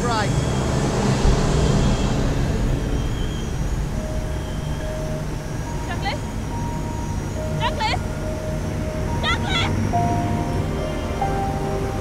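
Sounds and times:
wind rushing past: 0.0 - 9.2
biplane engine droning: 0.0 - 12.0.

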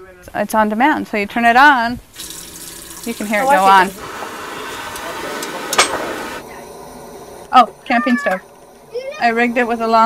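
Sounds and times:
gas burner and flowing water rush: 2.1 - 6.4.

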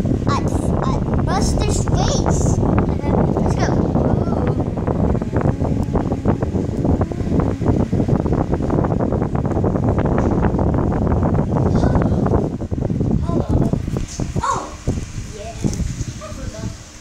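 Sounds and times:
microphone rubbing rumble and crackle: 0.0 - 17.0.

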